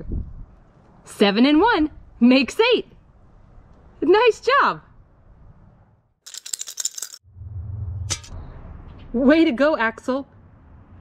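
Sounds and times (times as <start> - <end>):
plastic counters rattling: 6.3 - 7.2
low rumble: 7.2 - 9.2.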